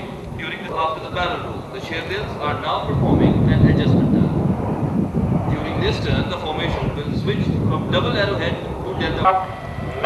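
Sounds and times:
jet aircraft rumbling overhead: 0.0 - 10.0.

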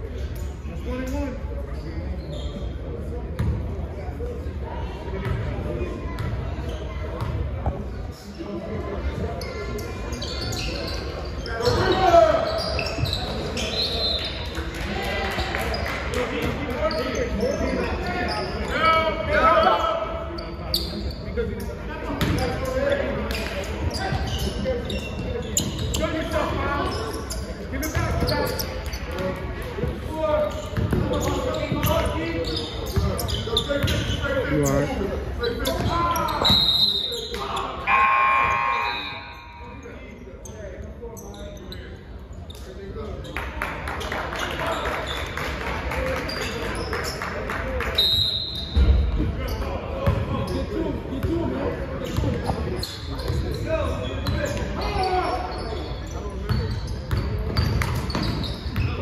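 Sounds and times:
basketball bouncing on gym floor: 30.7 - 31.9
people shouting in a hall: 37.4 - 39.6.

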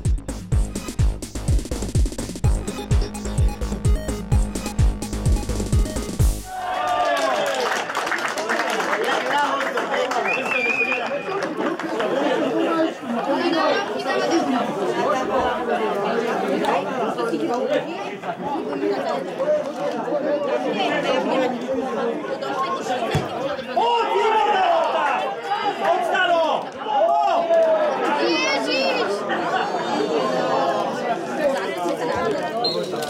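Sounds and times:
high steady tone: 2.4 - 6.5
chatter of many voices: 8.1 - 33.0.

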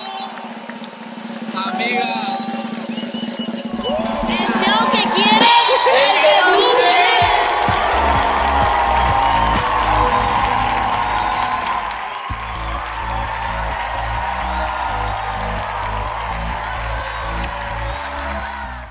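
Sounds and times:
crowd cheering and applause: 0.0 - 18.9
music with stepping bass line: 7.2 - 18.7.

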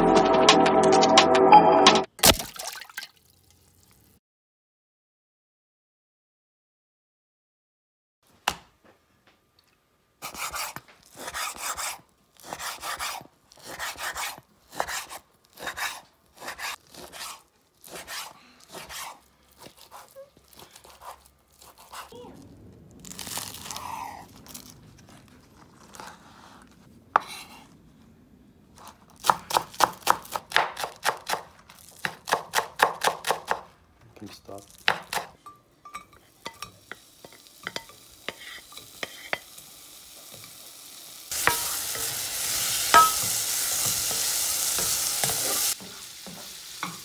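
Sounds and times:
knife cutting on wooden board: 10.2 - 22.1, 25.8 - 27.6
rapid knife chopping: 32.0 - 33.7.

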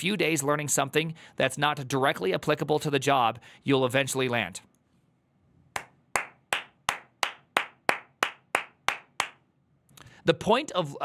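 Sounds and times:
person clapping slowly: 5.8 - 9.4.

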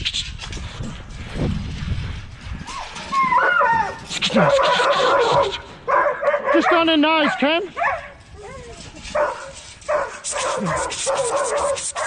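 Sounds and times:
dog yipping cry: 2.7 - 6.6.

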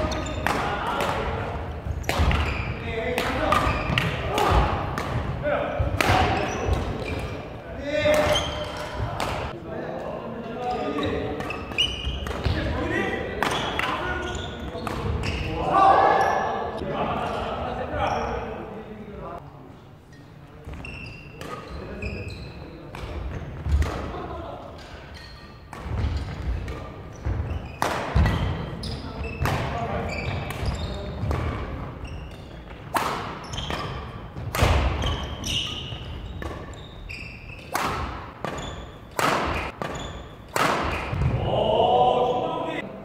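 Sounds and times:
rackets striking shuttlecock: 0.0 - 7.5, 11.3 - 12.6, 21.4 - 21.7, 22.9 - 24.1, 24.8 - 27.0, 27.7 - 28.7, 30.4 - 41.4
sneakers squeaking on wooden court: 0.0 - 9.5, 10.6 - 16.6, 20.1 - 24.0, 24.8 - 41.4
players' voices: 0.0 - 36.6, 37.6 - 43.0.

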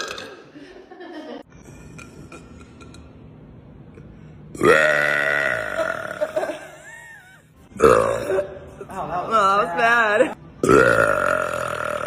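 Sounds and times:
woman burping loudly: 0.0 - 0.5, 4.6 - 6.8, 7.7 - 8.7, 10.6 - 12.0.

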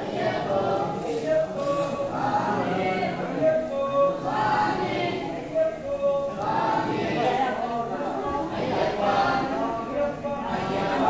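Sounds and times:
group chanting in unison: 0.0 - 11.0.

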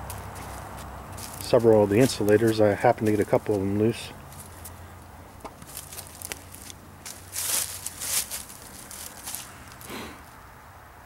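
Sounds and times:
footsteps in dry leaves: 0.0 - 10.4.

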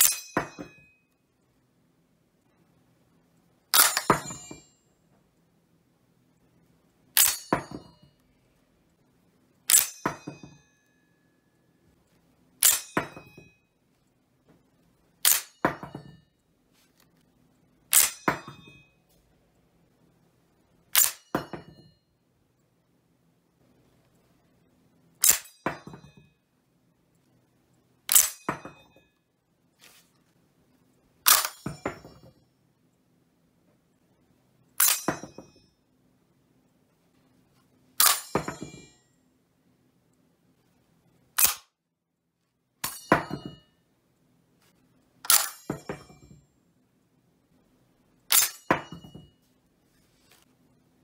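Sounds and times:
metal clip falling and ringing: 0.0 - 1.0, 3.8 - 4.7, 7.2 - 8.2, 9.7 - 10.8, 34.8 - 35.7, 38.0 - 39.0, 42.8 - 43.8, 45.3 - 46.4, 48.3 - 49.4
short metallic ring: 0.0 - 1.1, 3.8 - 4.9.

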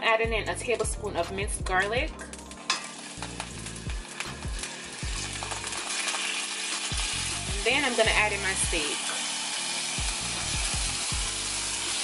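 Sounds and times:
garlic sizzling in butter: 2.2 - 12.0.

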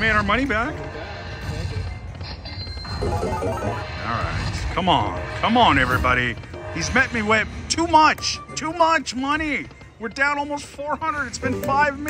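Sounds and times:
casino background din: 0.0 - 4.0
slot machine tones and chimes: 2.9 - 4.2.

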